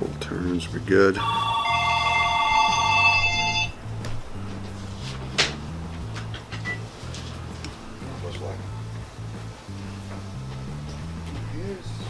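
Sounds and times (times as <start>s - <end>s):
background music: 0.0s - 12.0s
high ringing tone: 1.2s - 3.8s.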